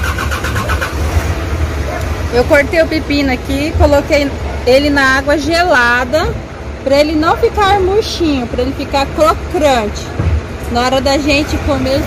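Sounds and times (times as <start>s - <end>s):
engine rumbling: 0.0s - 12.0s.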